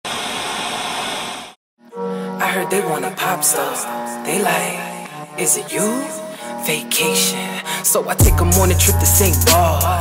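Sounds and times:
music: 1.8s - 10.0s.

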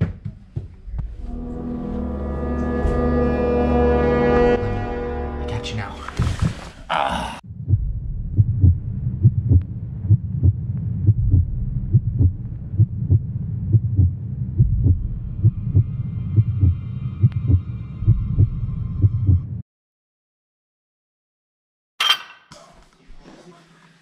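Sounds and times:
low drone: 1.2s - 5.7s, 7.5s - 19.6s
heartbeat thumps: 7.5s - 19.6s.

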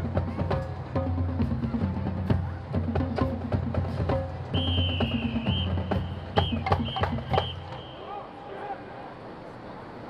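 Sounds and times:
marching band drums: 0.0s - 8.0s
shrill whistle blasts: 4.5s - 8.3s.

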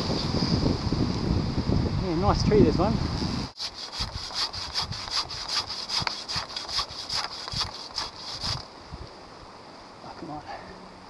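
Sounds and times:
saw cutting through tree trunk: 3.6s - 8.7s.

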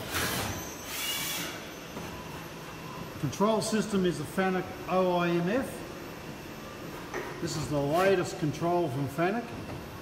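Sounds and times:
machine mechanical hum: 0.0s - 10.0s.

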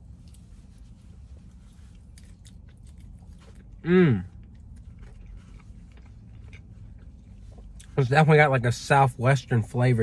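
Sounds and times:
person chewing with crunching: 0.0s - 8.0s
person humming mmm: 3.8s - 4.4s.

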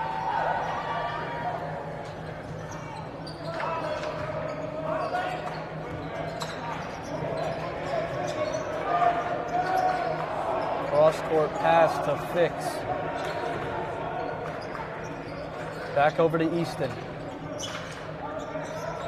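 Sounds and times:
voices in large hall: 0.0s - 19.0s
sneakers squeaking: 2.0s - 12.0s, 13.1s - 19.0s.

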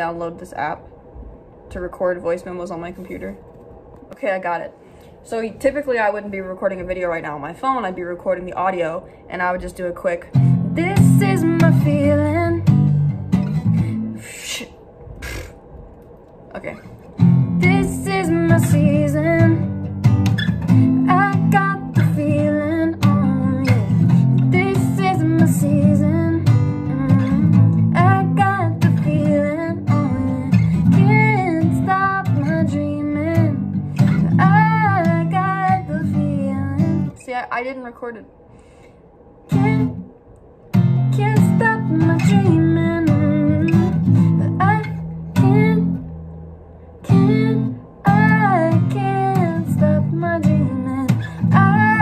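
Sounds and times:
woman singing: 7.6s - 13.0s, 16.6s - 20.0s, 20.6s - 37.5s, 39.5s - 40.0s, 41.0s - 46.1s, 47.0s - 52.0s
acoustic guitar strumming: 10.3s - 14.1s, 17.2s - 37.1s, 40.7s - 46.3s, 47.0s - 52.0s.

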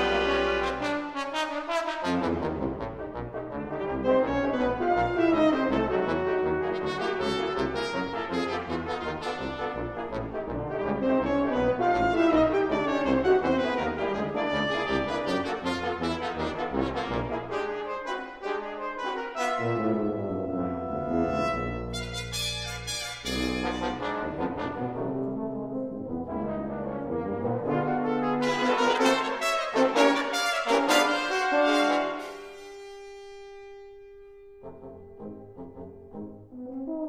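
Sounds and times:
brass ensemble playing chords: 0.0s - 37.0s.

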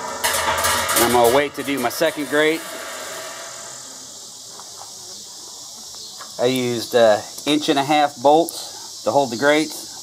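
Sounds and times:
high-pitched outdoor hiss: 0.0s - 10.0s.

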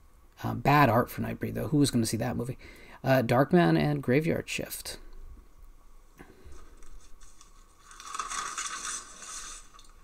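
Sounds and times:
paper rustling and crinkling: 6.5s - 10.0s.

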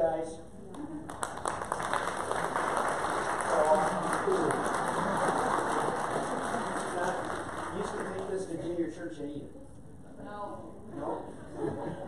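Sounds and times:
crowd applauding: 0.7s - 8.6s
murmur of voices: 3.4s - 12.0s.

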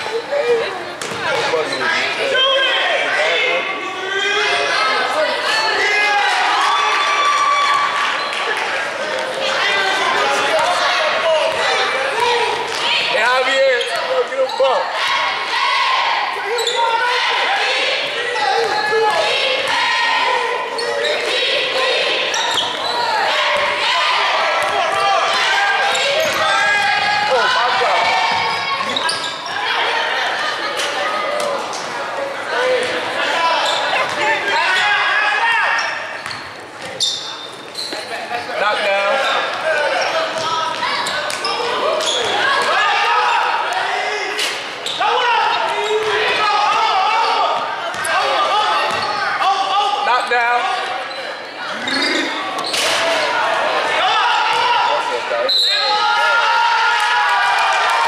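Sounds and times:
people shouting: 9.4s - 31.6s, 38.6s - 50.8s, 51.8s - 58.0s.

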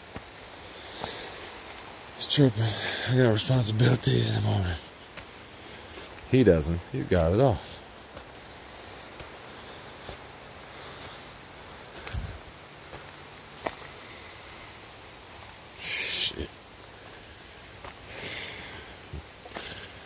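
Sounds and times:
footsteps on rocky dirt trail: 0.0s - 15.8s, 16.6s - 20.0s
hard breathing: 0.3s - 3.3s, 5.0s - 6.3s, 7.6s - 12.5s, 16.9s - 20.0s.

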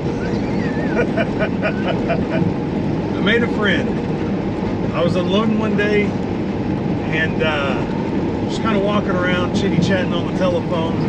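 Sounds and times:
man laughing: 0.0s - 2.5s
truck engine and road noise: 0.0s - 11.0s.

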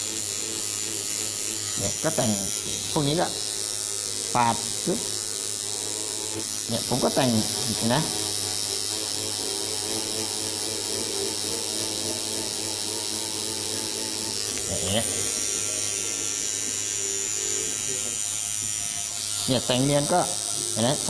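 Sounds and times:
tattoo machine buzzing: 0.0s - 21.0s.

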